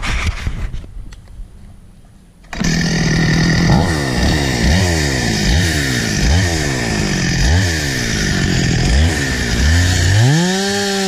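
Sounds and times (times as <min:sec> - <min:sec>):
chainsaw engine running: 0:02.5 - 0:11.0.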